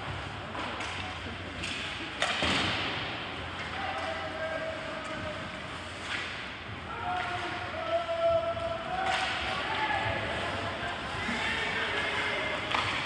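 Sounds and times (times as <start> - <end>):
faint drawn-out shouts: 6.9 - 13.0.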